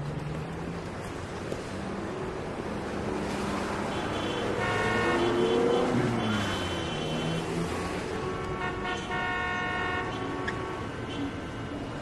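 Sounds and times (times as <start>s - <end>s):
passing vehicles: 0.0s - 12.0s
vehicle horns honking: 3.8s - 11.7s.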